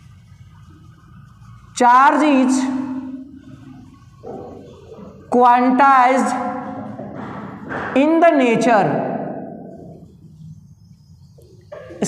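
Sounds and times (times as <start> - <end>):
low room hum: 0.0 - 12.0
marker writing on whiteboard: 0.1 - 8.4
person speaking: 1.8 - 9.1.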